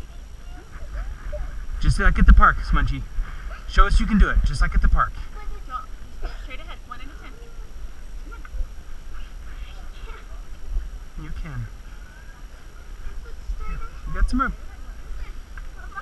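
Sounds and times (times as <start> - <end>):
distant indistinct voices: 0.0 - 16.0
low rumble on microphone: 0.0 - 16.0.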